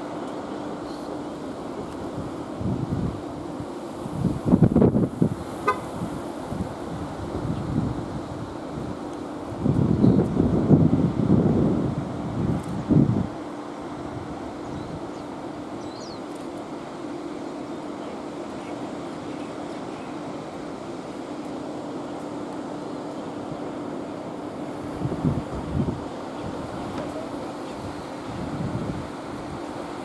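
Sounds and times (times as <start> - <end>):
outdoor wind hiss: 0.0 - 30.0
wind buffeting microphone: 1.9 - 16.1, 24.6 - 30.0.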